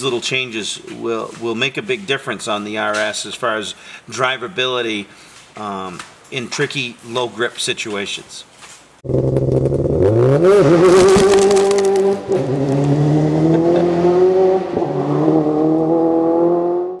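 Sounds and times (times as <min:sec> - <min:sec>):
car engine revving: 0:09.0 - 0:17.0.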